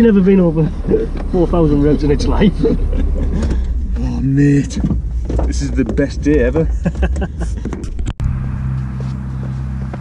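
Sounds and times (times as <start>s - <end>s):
car engine humming: 0.0s - 10.0s
men laughing: 2.1s - 3.9s, 6.6s - 7.8s.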